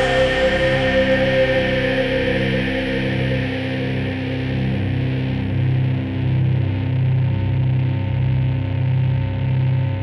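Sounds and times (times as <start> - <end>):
distorted electric guitar drone: 0.0 - 10.0.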